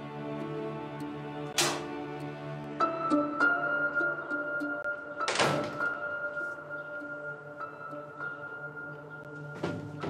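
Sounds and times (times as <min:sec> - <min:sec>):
soft sustained background score: 0:00.0 - 0:09.9
door thud: 0:01.6 - 0:01.9, 0:05.3 - 0:06.0.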